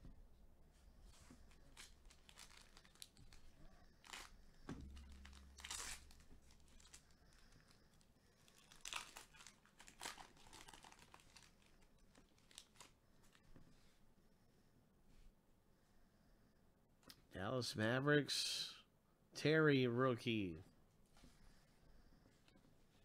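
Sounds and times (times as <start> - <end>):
foil wrapper tearing and crinkling: 1.5 - 7.8, 8.4 - 13.0.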